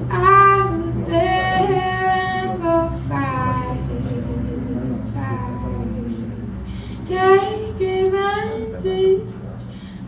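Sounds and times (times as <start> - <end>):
woman singing slow melody: 0.0 - 9.3.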